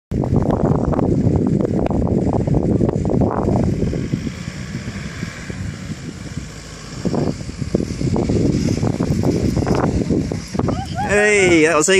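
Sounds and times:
wind rumbling on microphone: 0.1 - 11.9
engines working hard: 0.2 - 11.9.

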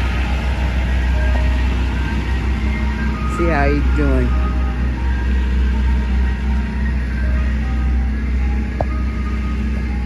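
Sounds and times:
ice cream truck chime music: 0.0 - 10.0
truck engine idling: 0.0 - 10.0.

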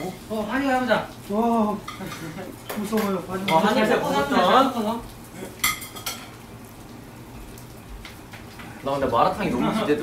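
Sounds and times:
food sizzling in a pan: 0.0 - 10.0
metal utensils clinking on cookware: 5.6 - 6.4.

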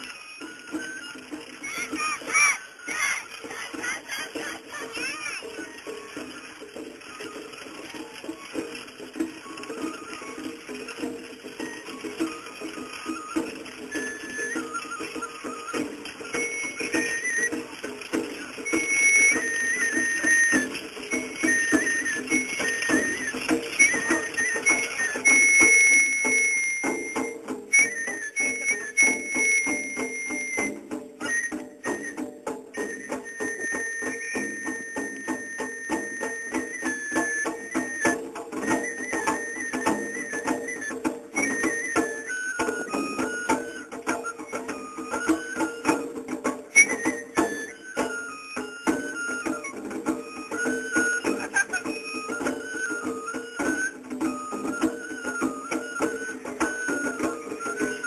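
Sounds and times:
bamboo flute melody: 0.0 - 58.0
quick percussion strokes: 0.0 - 58.0.

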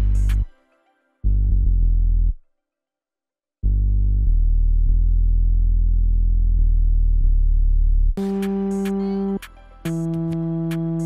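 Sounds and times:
deep sub-bass note: 1.3 - 2.4, 3.6 - 8.2.

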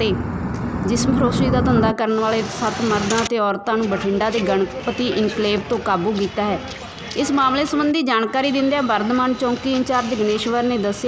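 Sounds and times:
woman speaking: 0.0 - 0.2, 0.8 - 11.0
low steady background rumble: 0.0 - 3.6.

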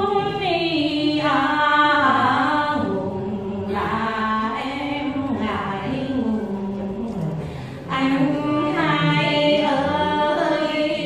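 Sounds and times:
women singing unaccompanied: 0.0 - 11.0.

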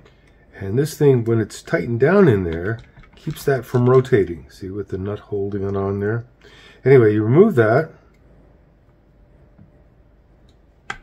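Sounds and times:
person speaking: 0.5 - 8.2
faint handling noise: 1.2 - 4.5.

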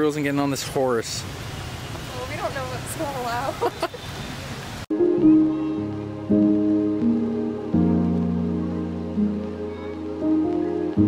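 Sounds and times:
outdoor ambience: 0.0 - 11.0
soft music with held chords: 4.9 - 11.0.

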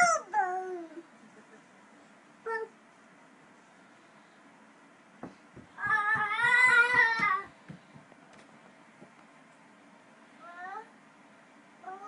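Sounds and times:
toddler crying: 5.8 - 7.5.

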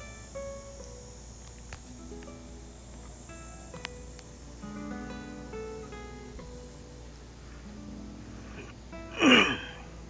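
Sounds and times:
acoustic guitar notes: 0.0 - 10.0
insects droning: 0.0 - 10.0.

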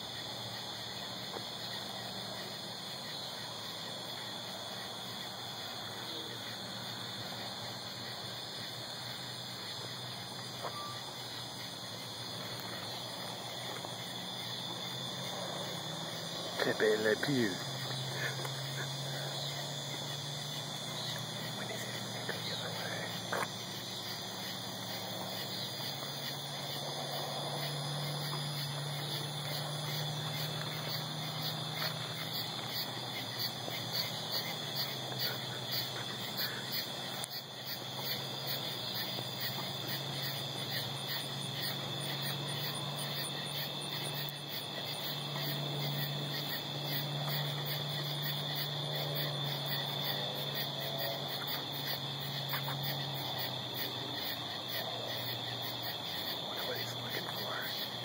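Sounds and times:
crickets chirping: 0.0 - 58.0.

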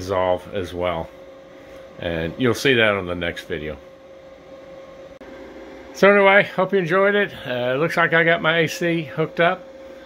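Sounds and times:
background hum and hiss: 0.0 - 10.0.

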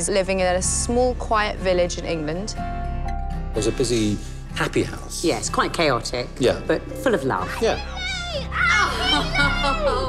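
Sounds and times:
background music: 0.0 - 10.0
children squealing and shouting: 7.6 - 10.0.

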